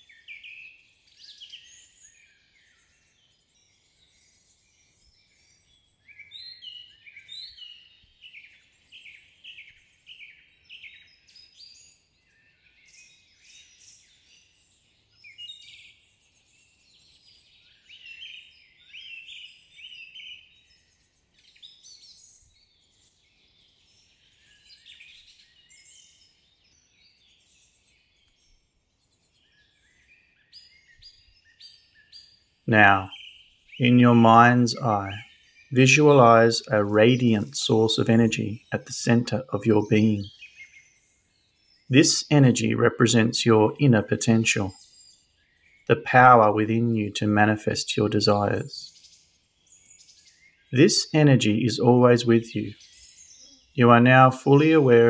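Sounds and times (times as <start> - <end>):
birds chirping: 29.5 - 40.7, 41.4 - 45.0, 45.6 - 49.0, 49.6 - 55.0.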